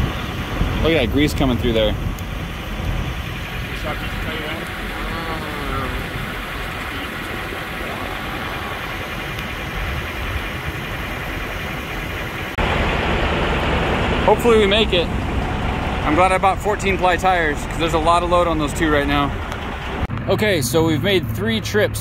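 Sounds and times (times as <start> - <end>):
vehicle engine idling: 0.0 - 22.0.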